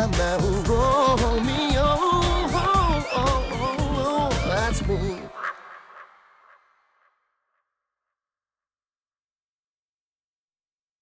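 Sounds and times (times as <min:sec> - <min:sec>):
pop band final chord: 0:00.0 - 0:05.2
person singing: 0:00.0 - 0:05.5.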